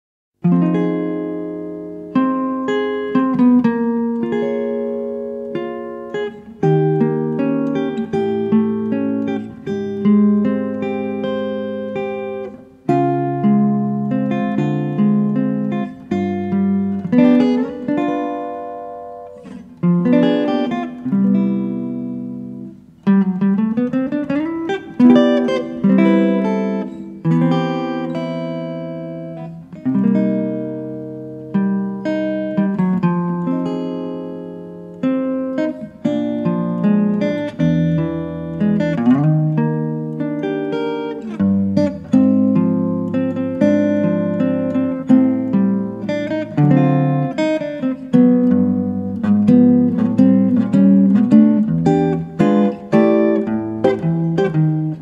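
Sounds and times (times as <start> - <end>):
plucked guitar music: 0.4 - 55.0.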